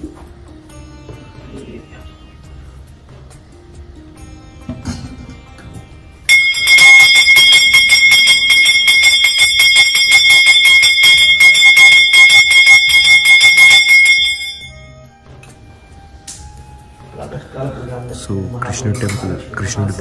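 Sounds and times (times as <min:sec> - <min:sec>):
hand bell ringing rapidly: 0:06.3 - 0:14.8.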